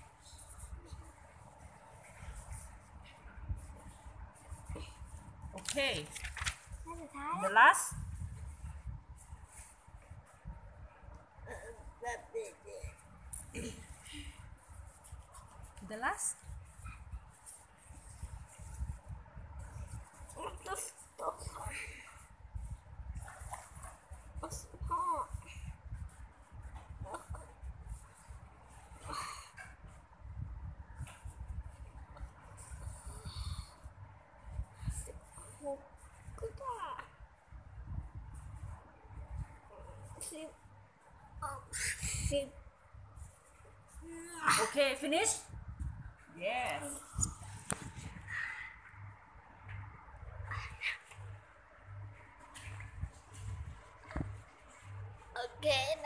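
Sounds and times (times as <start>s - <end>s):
faint low background noise: 0.0s - 56.0s.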